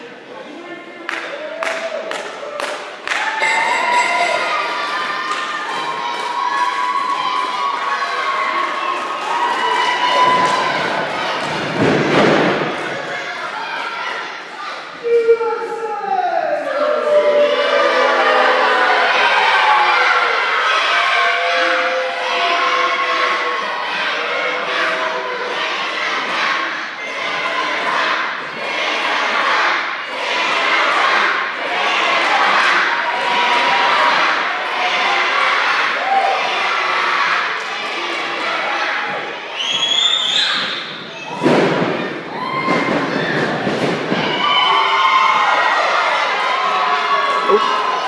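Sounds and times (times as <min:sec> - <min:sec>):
crowd shouting in echoing hall: 0:00.0 - 0:48.0.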